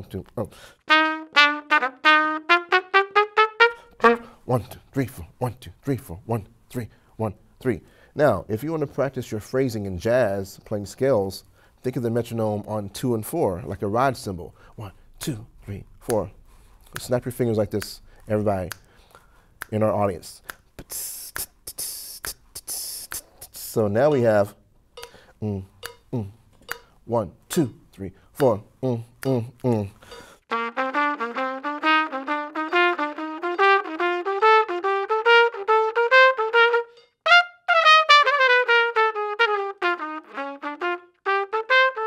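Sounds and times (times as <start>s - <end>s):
trumpet playing march phrase: 0.9s - 4.4s, 30.5s - 42.0s
finger snaps: 16.8s - 19.8s, 20.4s - 23.3s
mouthed cymbal sounds: 16.9s - 27.8s.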